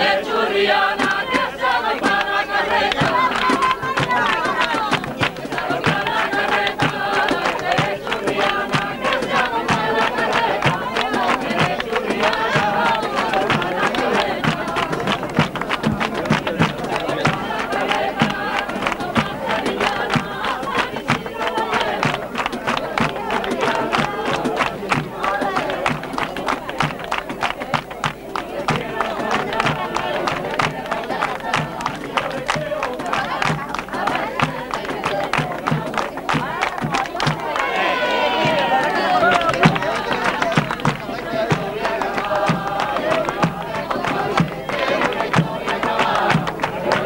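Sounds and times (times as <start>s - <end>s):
group singing: 0.0s - 47.0s
hands clapping in rhythm: 0.0s - 47.0s.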